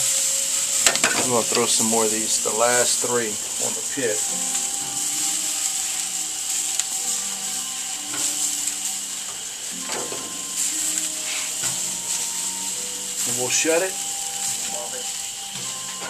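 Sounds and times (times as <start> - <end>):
meat sizzling on a grill: 0.0 - 16.0.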